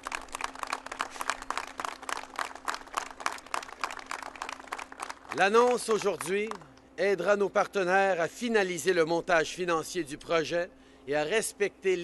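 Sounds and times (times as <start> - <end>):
audience applauding: 0.0 - 6.6.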